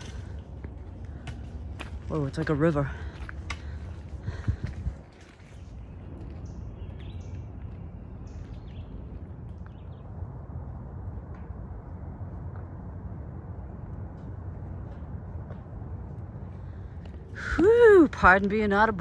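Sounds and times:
footsteps on rocky trail: 0.0s - 8.8s
low outdoor rumble: 0.0s - 19.0s.

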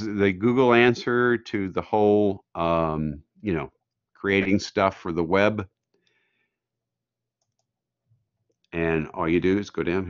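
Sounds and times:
computer mouse clicks: 7.4s - 7.8s.

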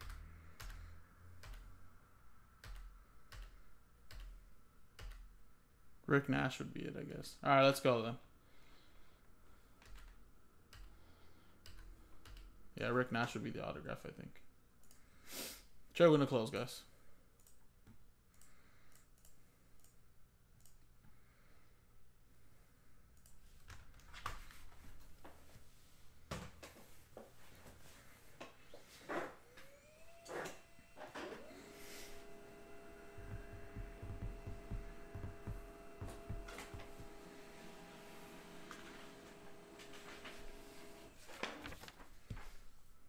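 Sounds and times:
small motor whirring: 29.4s - 41.2s.

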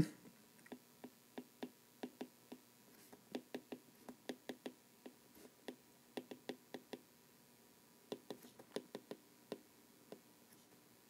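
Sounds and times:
stylus tapping on tablet screen: 0.7s - 7.1s, 8.1s - 10.2s.

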